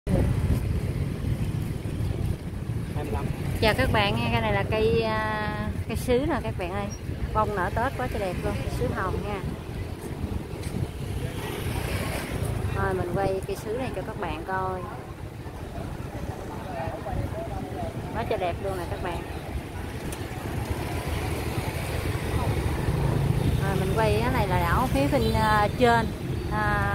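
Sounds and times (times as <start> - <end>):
wind buffeting microphone: 0.1 - 26.9.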